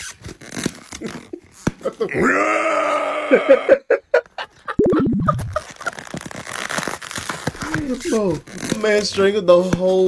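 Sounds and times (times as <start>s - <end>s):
styrofoam container and foil tearing: 0.0s - 2.1s, 5.3s - 10.0s.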